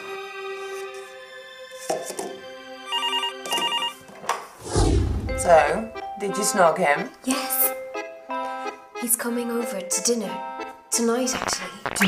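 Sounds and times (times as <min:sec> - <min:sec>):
desk telephone ringing: 0:02.9 - 0:04.0.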